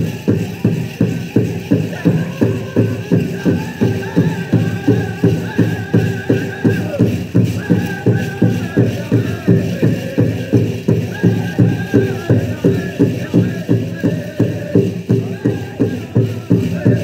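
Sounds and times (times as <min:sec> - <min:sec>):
drum steady beat: 0:00.0 - 0:17.0
group singing high-pitched: 0:01.0 - 0:17.0.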